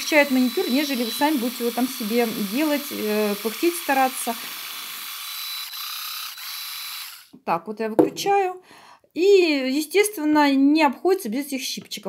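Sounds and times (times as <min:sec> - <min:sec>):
electric manicure device whining: 0:00.0 - 0:07.4.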